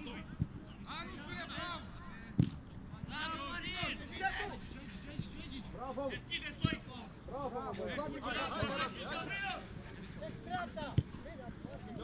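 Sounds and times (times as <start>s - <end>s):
voices shouting and calling out: 0.0s - 12.0s.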